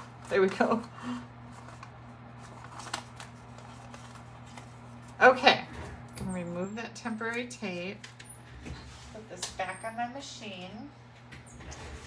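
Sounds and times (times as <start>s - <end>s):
low steady hum: 0.0s - 12.0s
paper clicks and rustles: 1.5s - 5.2s.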